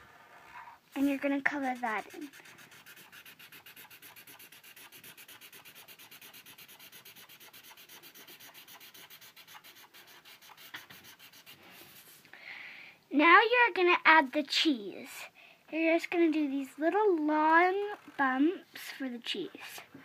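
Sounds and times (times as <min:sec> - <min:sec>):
marker scrubbing on paper: 0:00.9 - 0:12.2.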